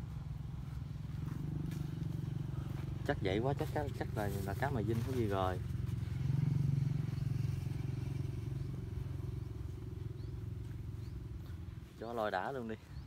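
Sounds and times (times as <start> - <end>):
small engine droning: 0.0 - 13.0.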